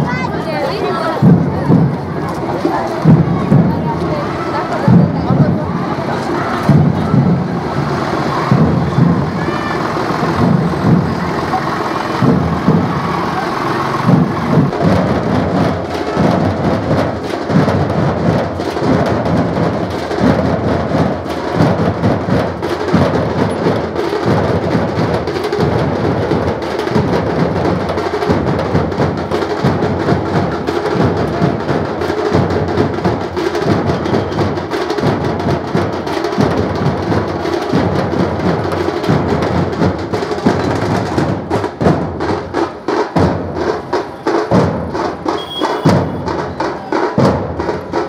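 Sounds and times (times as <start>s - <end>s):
barrel drums beaten with sticks: 0.0s - 48.0s.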